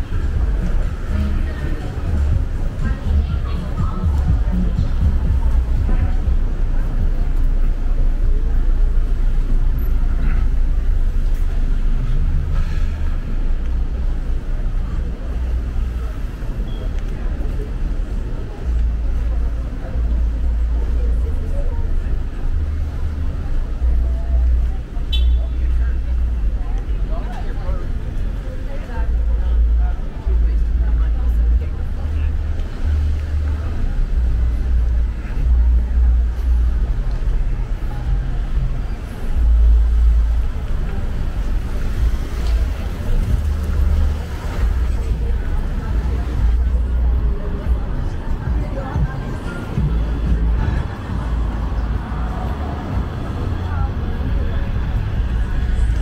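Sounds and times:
faint voices of passersby: 0.0 - 56.0
street traffic rumble: 0.0 - 56.0.

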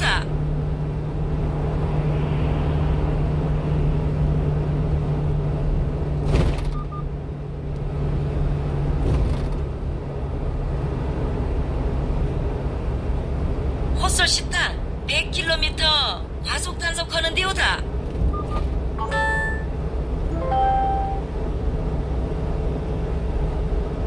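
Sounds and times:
road and tyre rumble: 0.0 - 24.0
truck engine hum: 0.0 - 24.0.

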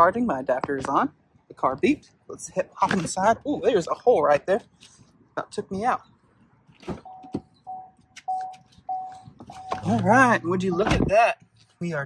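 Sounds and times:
car warning chime beeping: 7.0 - 10.8.

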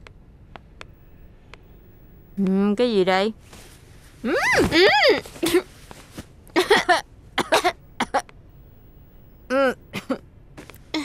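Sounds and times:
woman coughing: 5.4 - 5.7, 6.6 - 8.2, 9.6 - 10.2.

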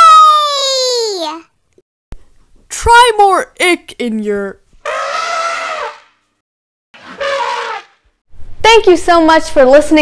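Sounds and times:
voice imitating elephant trumpeting: 4.8 - 6.1, 7.0 - 8.0.

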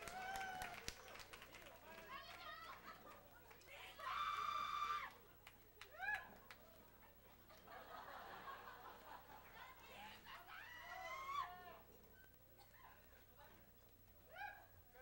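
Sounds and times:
audience whooping: 0.0 - 1.2, 3.7 - 5.2, 10.0 - 11.8
people clapping: 0.0 - 7.8, 8.7 - 10.3.

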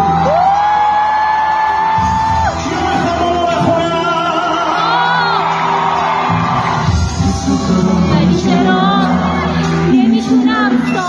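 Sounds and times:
live pop band playing: 0.0 - 11.0.

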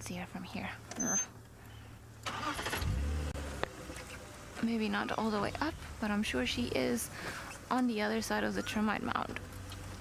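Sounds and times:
vehicle engine starting: 2.1 - 10.0.

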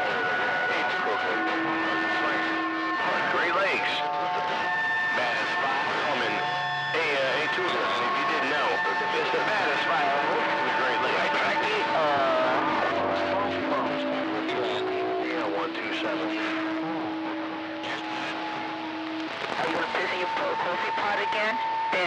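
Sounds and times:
faint overlapping distant voices: 0.0 - 22.0
radio static: 0.0 - 22.0.

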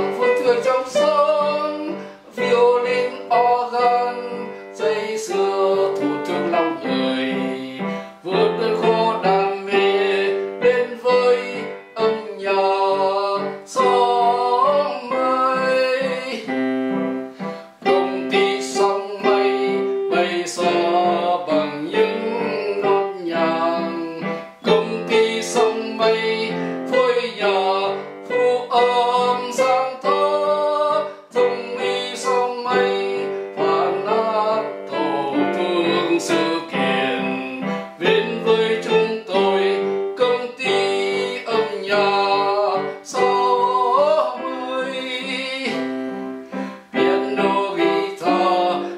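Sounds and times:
electronic keyboard song: 0.0 - 48.9.

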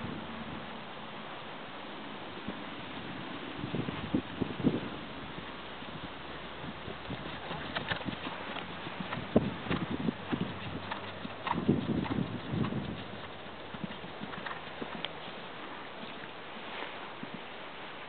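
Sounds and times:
horse hoofbeats on sand: 6.9 - 17.4.

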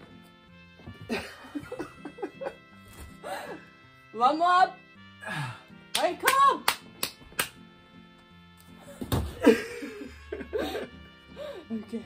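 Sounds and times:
quiet background music: 0.0 - 12.0
hand claps: 5.9 - 7.6.

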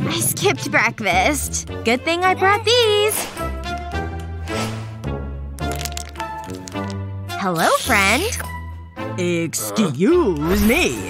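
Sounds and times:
background music: 0.0 - 11.0
candy crunching: 5.6 - 7.0, 7.6 - 8.4.

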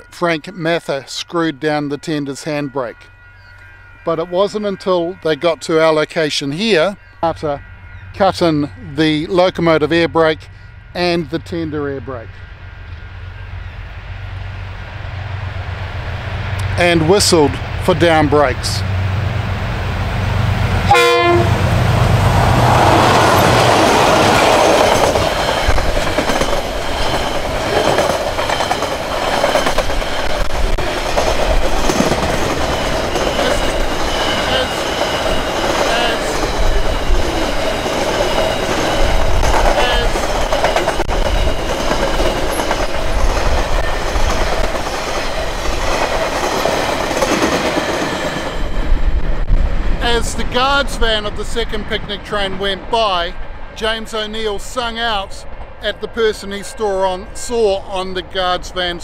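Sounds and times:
diesel locomotive passing: 0.0 - 59.0
wagon wheels clattering on rails: 23.4 - 48.6.

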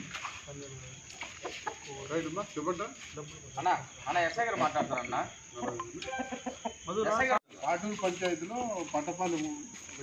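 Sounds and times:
roosters clucking: 0.0 - 8.5.

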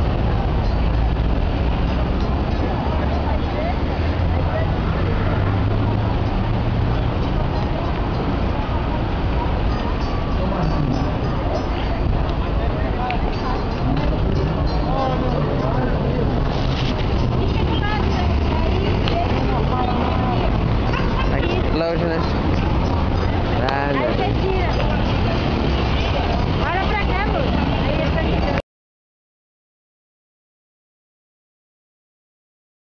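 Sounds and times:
traffic rumble: 0.0 - 28.6
voices: 0.0 - 28.6.

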